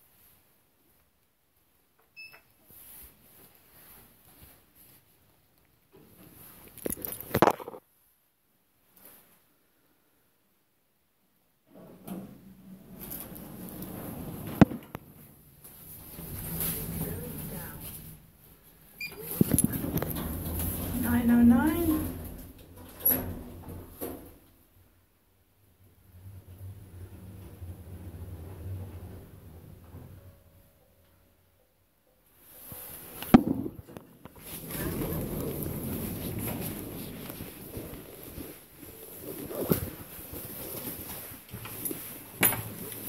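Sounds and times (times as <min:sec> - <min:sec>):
low rumble: 0:34.4 - 0:38.8.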